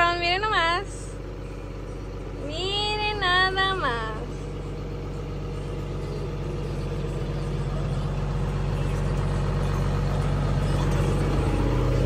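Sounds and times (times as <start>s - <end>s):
tractor engine running: 0.0s - 12.0s.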